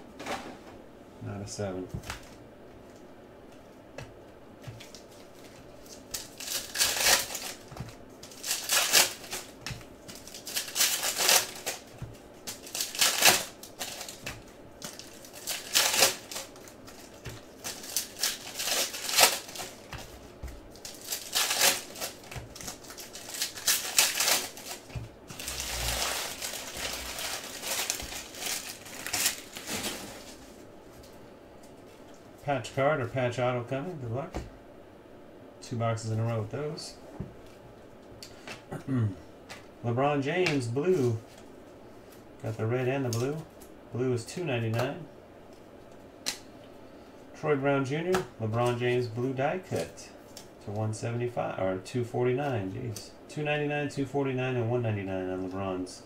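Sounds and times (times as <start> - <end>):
foil wrappers tearing and crinkling: 4.8 - 30.6.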